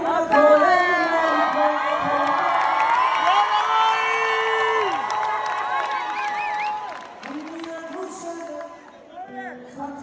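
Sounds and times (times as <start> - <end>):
audience cheering and shouting: 0.8 - 9.1.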